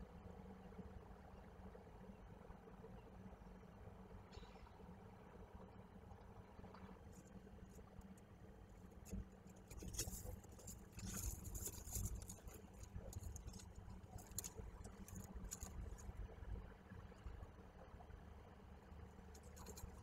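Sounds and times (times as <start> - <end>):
low steady rumble: 0.0 - 20.0
bird scratching in gravel: 8.9 - 16.2, 19.3 - 20.0.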